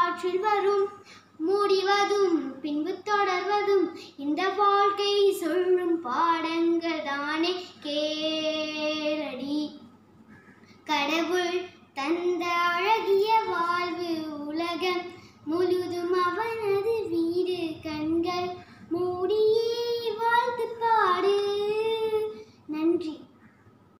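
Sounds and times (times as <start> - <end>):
girl singing: 0.0 - 10.0, 10.8 - 23.3.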